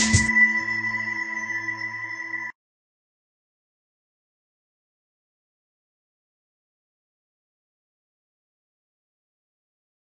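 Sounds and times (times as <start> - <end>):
intro logo music: 0.0 - 1.1.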